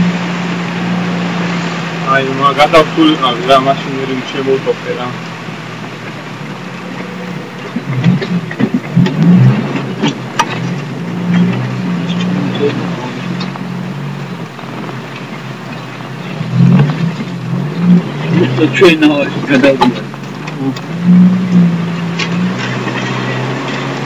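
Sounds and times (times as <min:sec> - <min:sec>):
car engine running: 0:00.0 - 0:24.0.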